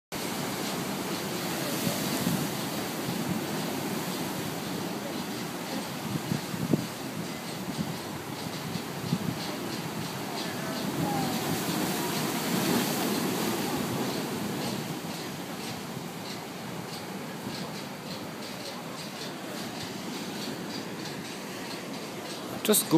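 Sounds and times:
surf breaking on rocks: 0.2 - 22.9.

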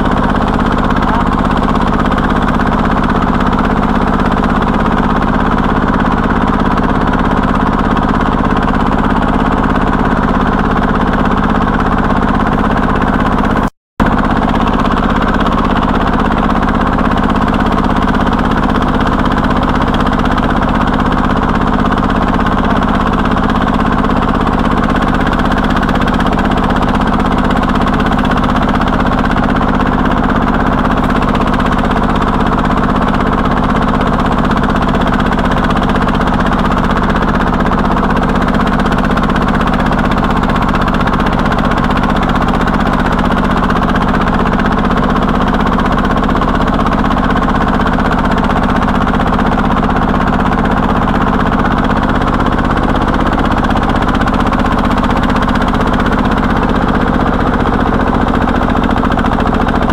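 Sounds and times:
diesel engine under heavy load: 0.0 - 59.9.

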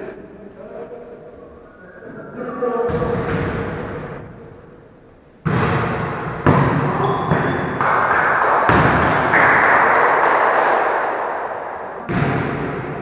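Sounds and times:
reverberant hall noise: 0.0 - 13.0
volleyball thuds: 5.4 - 11.3, 12.0 - 13.0.

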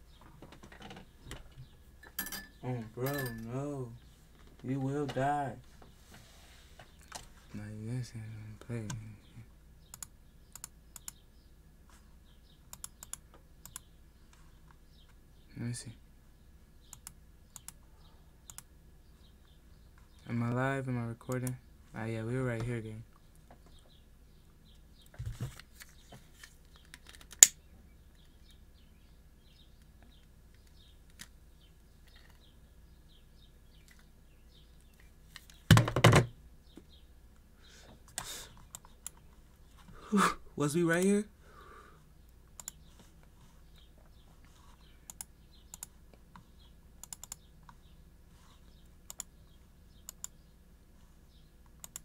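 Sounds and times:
computer keys clicking: 9.8 - 11.2, 12.7 - 13.9, 16.8 - 17.8, 18.4 - 18.7, 21.3 - 21.6, 38.1 - 39.3, 42.5 - 42.9, 45.0 - 47.8, 49.0 - 49.4, 50.0 - 50.4, 51.6 - 52.0.

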